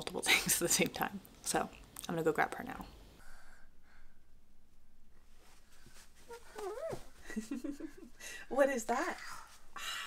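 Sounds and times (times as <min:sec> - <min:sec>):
toddler babbling and squealing: 0:06.3 - 0:07.1.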